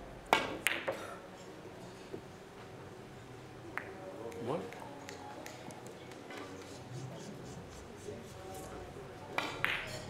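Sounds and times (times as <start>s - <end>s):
quiet hall ambience: 0.0s - 10.0s.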